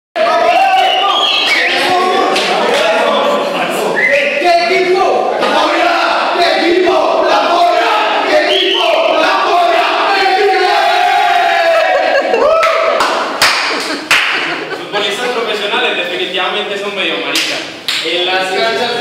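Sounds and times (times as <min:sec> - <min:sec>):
men chanting and shouting: 0:00.2 - 0:13.0.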